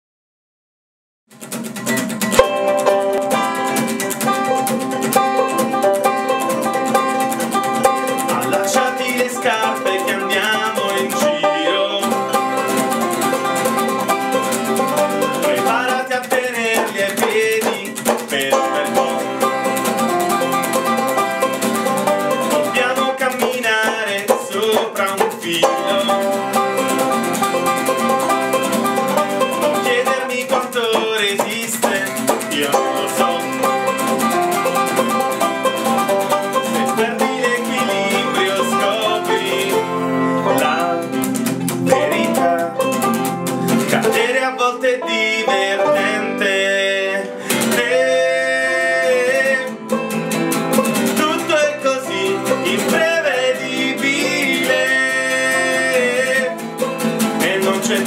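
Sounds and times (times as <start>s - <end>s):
acoustic guitar strumming: 1.3s - 58.0s
banjo picking: 1.3s - 58.0s
person singing: 2.4s - 58.0s.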